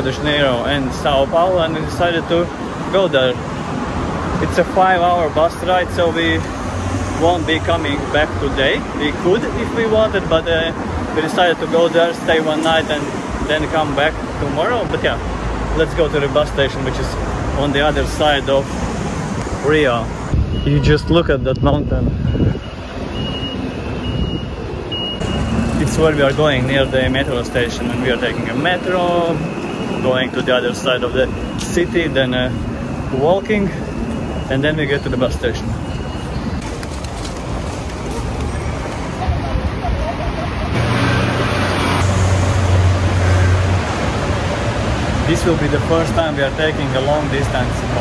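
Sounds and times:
din of busy station: 0.0 - 48.0
low rumble of street traffic: 0.0 - 48.0
reversing alarm beeping: 20.5 - 25.8, 28.1 - 39.3.

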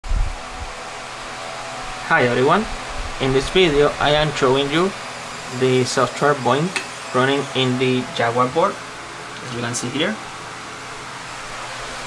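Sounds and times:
steady rushing noise with hum: 0.0 - 6.1.

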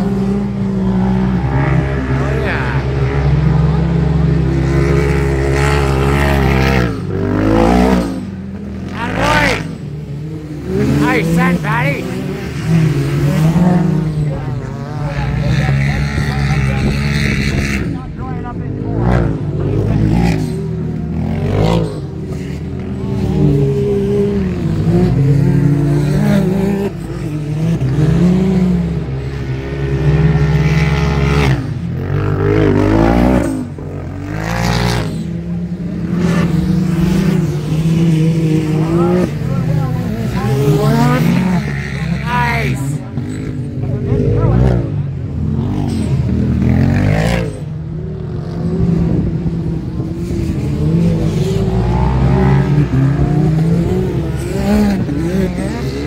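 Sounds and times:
off-road vehicle engines revving: 0.0 - 56.0.

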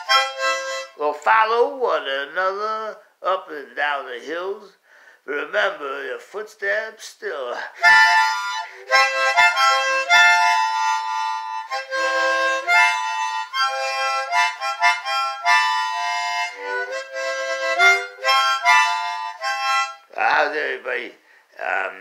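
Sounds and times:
harmonica melody: 0.0 - 1.6, 7.5 - 21.1.

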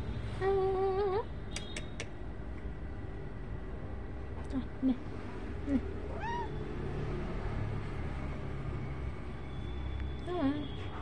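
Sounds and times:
steady low hum: 0.0 - 10.8
cat meowing: 6.0 - 6.7.

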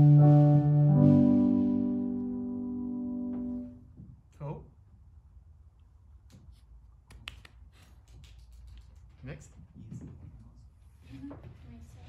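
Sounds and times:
low steady hum: 0.0 - 7.1.

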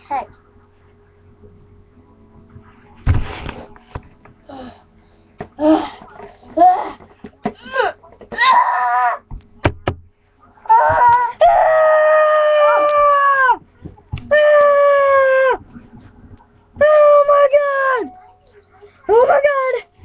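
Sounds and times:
boy screaming: 8.3 - 9.2, 10.7 - 13.6.

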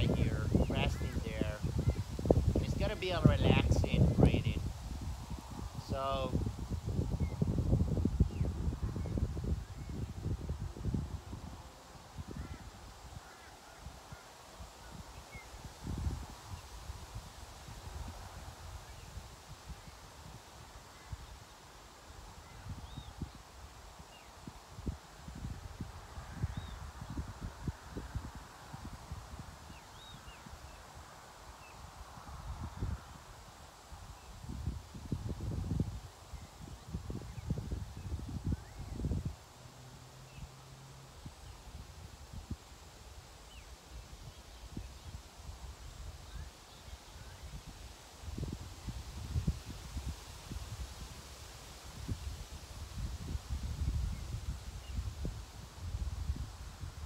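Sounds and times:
wind buffeting microphone: 0.0 - 21.5, 22.1 - 31.0, 31.6 - 40.5, 41.1 - 57.0.

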